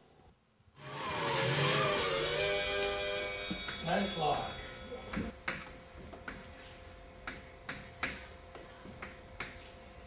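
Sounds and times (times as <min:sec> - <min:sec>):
chalk tapping on a chalkboard: 0:05.2 - 0:08.3, 0:08.9 - 0:10.0
chalk scratching on a chalkboard: 0:05.5 - 0:08.2, 0:09.0 - 0:10.0.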